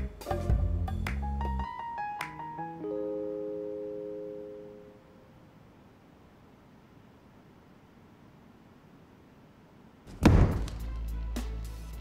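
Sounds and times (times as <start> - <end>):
faint steady hiss: 0.0 - 12.0
piano chord: 0.3 - 5.3.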